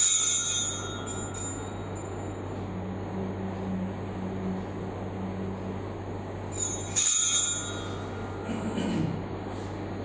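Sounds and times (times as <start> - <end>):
altar bells ringing: 0.0 - 2.5, 6.5 - 8.5.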